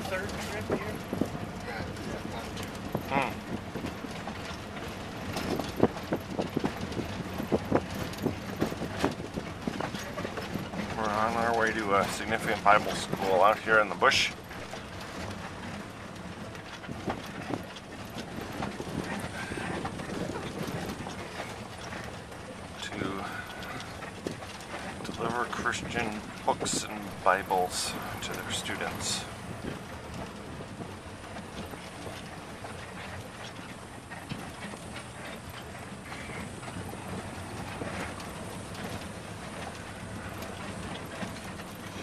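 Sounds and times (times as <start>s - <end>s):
engine and tyres rumbling: 0.0s - 42.0s
vehicle knocks and rattles: 0.0s - 42.0s.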